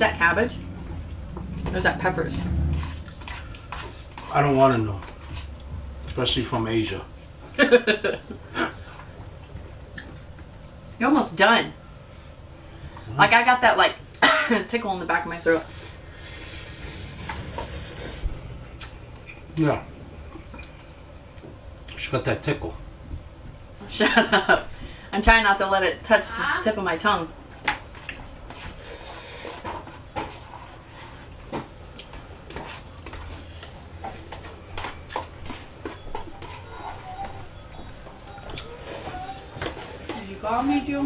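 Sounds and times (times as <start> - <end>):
noodles slurped: 16.2 - 18.9.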